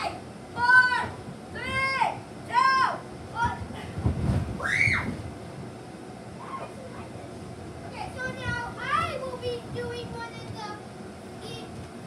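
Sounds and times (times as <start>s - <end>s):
child whooping: 4.6s - 5.2s.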